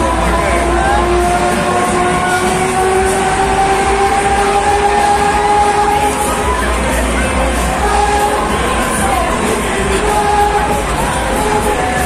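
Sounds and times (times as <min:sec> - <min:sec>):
fairground ride din: 0:00.0 - 0:12.0.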